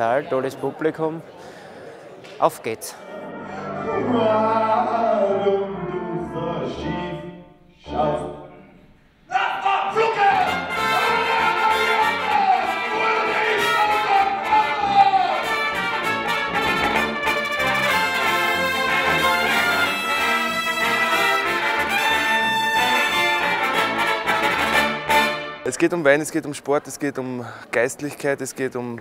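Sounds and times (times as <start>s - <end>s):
brass band playing: 3.0s - 8.6s, 9.9s - 25.7s.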